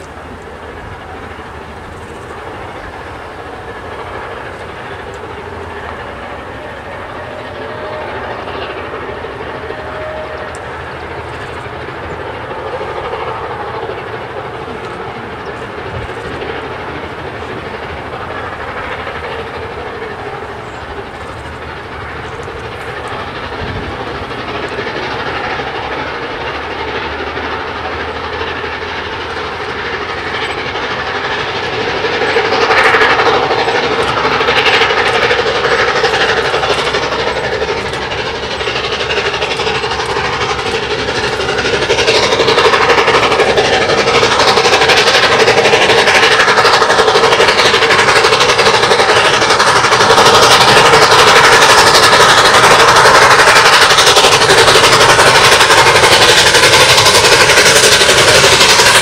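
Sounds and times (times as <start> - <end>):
steam locomotive exhaust beat: 0.0 - 59.0.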